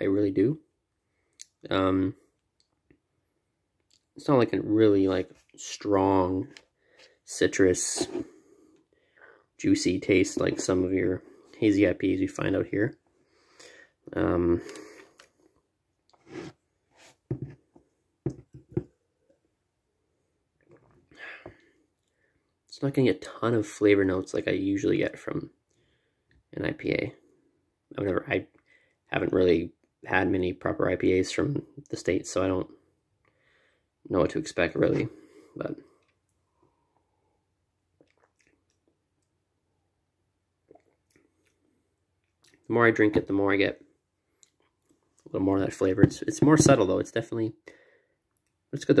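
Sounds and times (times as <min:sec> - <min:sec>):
soft breath: 0:06.7 - 0:07.3, 0:08.1 - 0:09.6, 0:13.1 - 0:14.0, 0:33.3 - 0:34.0, 0:47.7 - 0:48.2
sipping and swallowing: 0:40.6 - 0:41.6.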